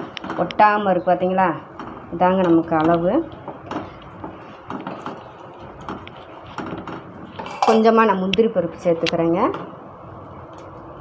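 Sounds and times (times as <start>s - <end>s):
wooden spatula stirring sticky mixture: 0.0s - 7.4s.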